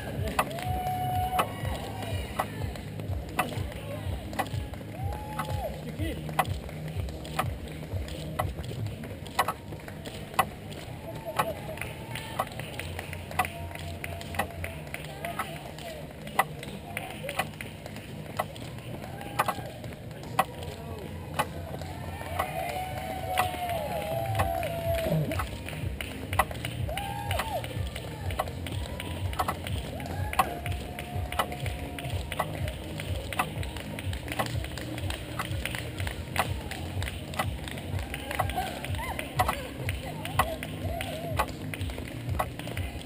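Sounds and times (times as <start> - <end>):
calls of encouragement: 0.0 - 8.7, 9.3 - 43.0
scattered handclaps: 0.0 - 43.0.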